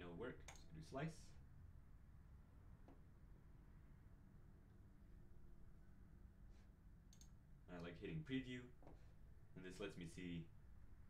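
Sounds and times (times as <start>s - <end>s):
man speaking: 0.0s - 1.4s, 7.7s - 8.7s, 9.6s - 10.5s
low room hum: 0.0s - 11.0s
computer mouse click: 0.4s - 0.7s, 7.1s - 7.9s.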